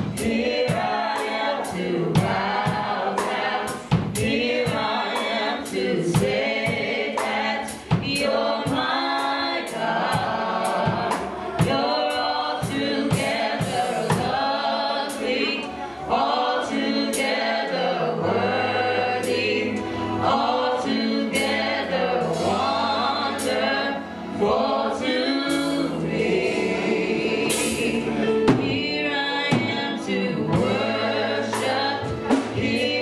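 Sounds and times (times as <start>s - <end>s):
band accompaniment: 0.0s - 33.0s
women singing gospel duet: 0.0s - 33.0s
low bass notes: 18.1s - 33.0s.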